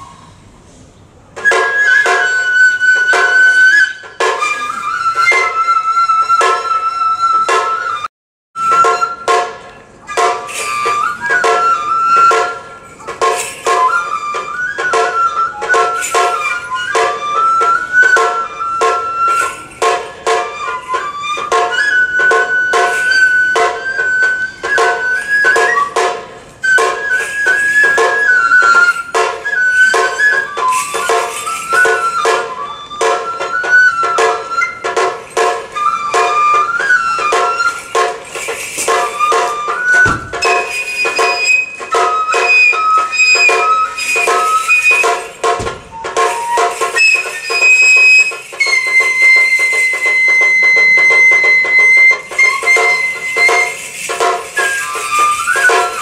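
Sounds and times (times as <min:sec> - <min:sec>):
bamboo flute melody: 0:00.0 - 0:56.0
fast drum strokes: 0:08.6 - 0:56.0
deep thuds: 0:40.0 - 0:40.6.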